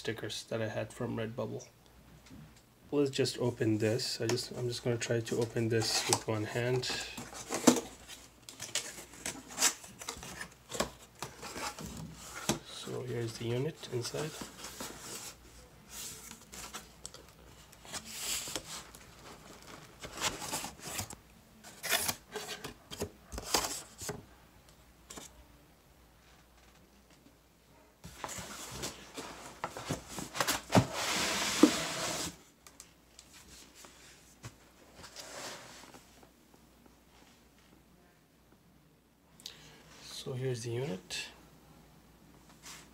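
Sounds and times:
cardboard scraping and rustling: 0:28.1 - 0:32.4.

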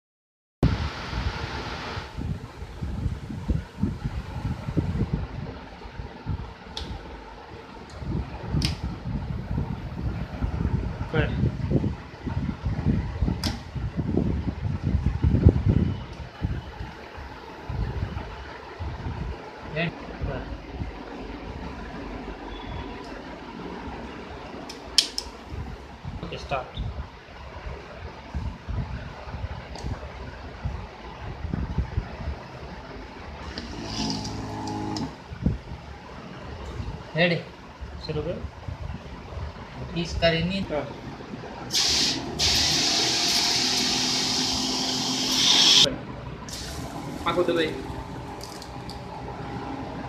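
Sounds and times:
pressure washer spray hissing: 0:41.7 - 0:45.8, 0:46.5 - 0:47.4.

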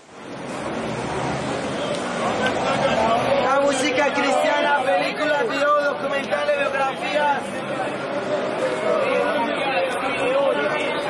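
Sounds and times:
babble of many voices: 0:00.0 - 0:11.0.

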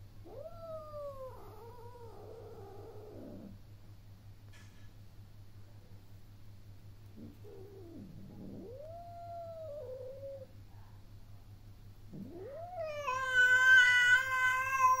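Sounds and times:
cat meowing: 0:12.4 - 0:15.0.

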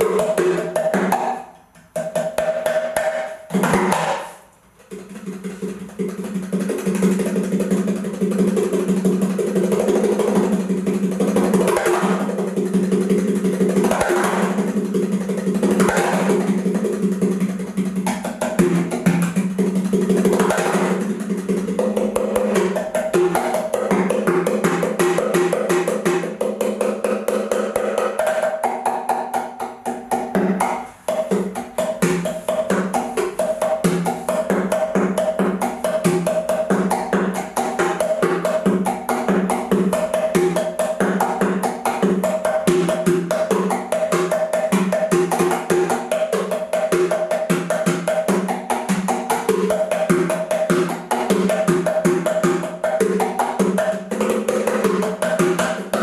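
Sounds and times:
wooden percussion box played by fingers: 0:00.0 - 0:56.0.

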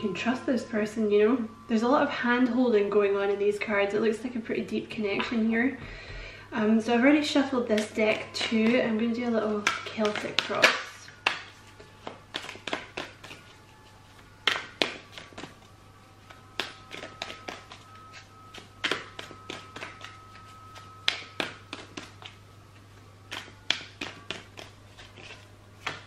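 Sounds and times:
cards clicking in hands: 0:09.6 - 0:13.5, 0:14.4 - 0:15.6, 0:16.3 - 0:17.8, 0:18.5 - 0:20.2, 0:20.8 - 0:22.4, 0:23.3 - 0:26.0.

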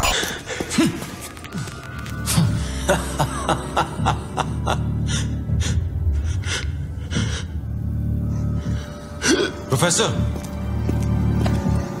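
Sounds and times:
tense film score drone: 0:00.0 - 0:12.0.

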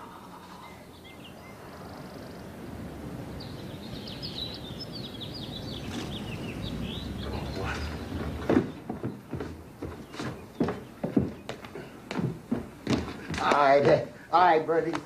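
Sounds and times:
birds chirping: 0:00.0 - 0:15.0
old car rumbling: 0:06.0 - 0:09.8
sharp knocks: 0:08.1 - 0:14.0.

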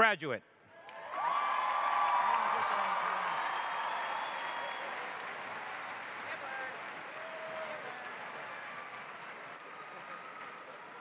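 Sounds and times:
audience applauding: 0:00.8 - 0:11.0
cheers and voices in crowd: 0:00.9 - 0:11.0.

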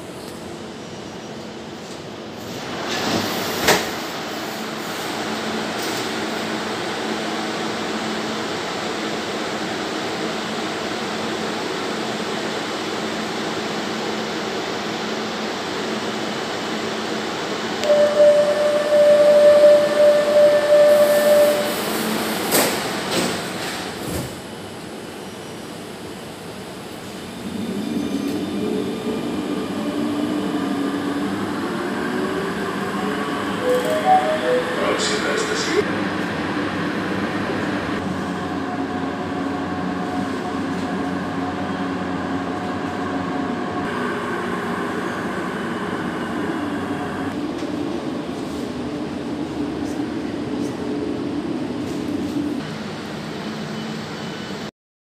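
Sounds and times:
train car humming: 0:00.0 - 0:54.7
door warning tone: 0:17.8 - 0:21.7, 0:33.5 - 0:35.8
train motor whine: 0:17.8 - 0:21.9.

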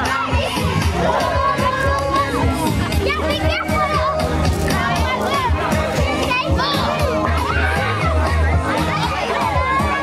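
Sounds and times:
children shouting: 0:00.0 - 0:10.0
music with pulsing bass beat: 0:00.0 - 0:10.0.

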